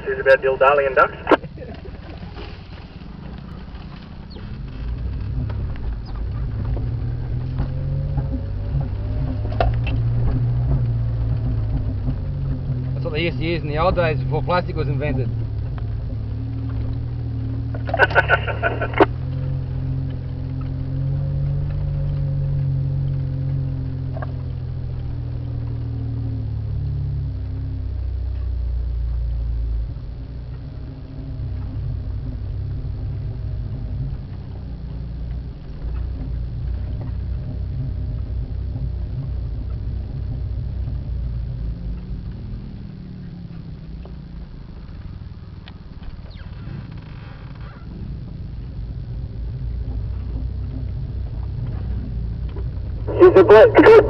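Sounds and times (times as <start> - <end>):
off-road vehicle engine running: 0.0 - 54.0
vehicle knocks and rattles: 1.6 - 18.1, 30.4 - 53.0.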